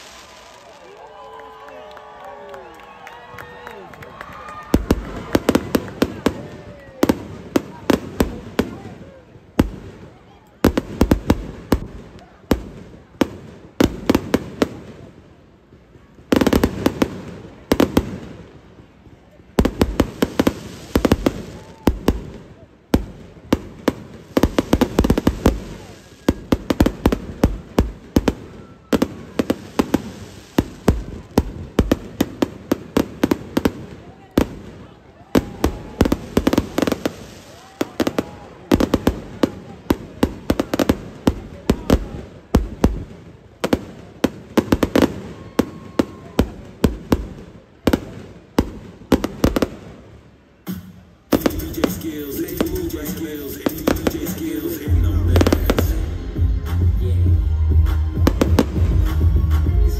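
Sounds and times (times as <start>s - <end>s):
fireworks bangs and crackles: 0.0s - 1.5s, 2.8s - 59.9s.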